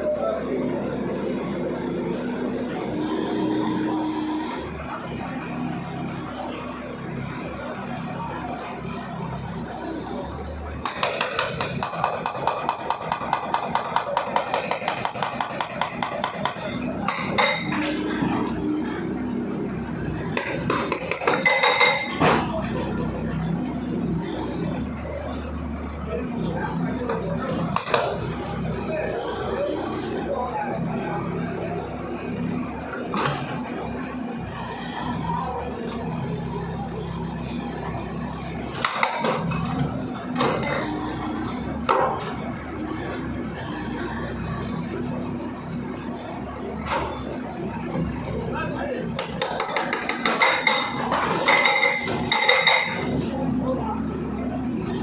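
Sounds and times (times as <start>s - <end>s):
diesel engine running: 0.0s - 55.0s
machinery rumble: 0.0s - 55.0s
bricks and rubble crashing: 10.8s - 17.9s, 20.2s - 22.6s, 49.2s - 53.3s.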